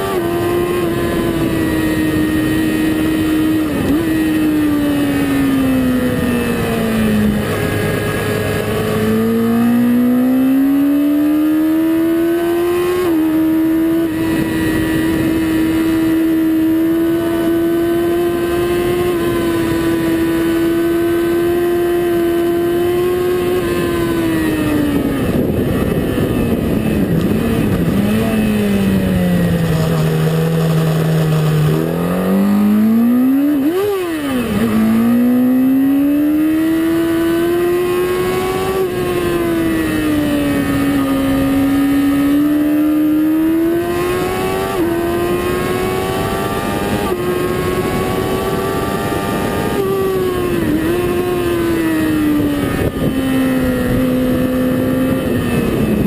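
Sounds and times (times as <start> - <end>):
engine revving through gear shifts: 0.0 - 56.0
motorcycle engine at high revs: 0.0 - 56.0.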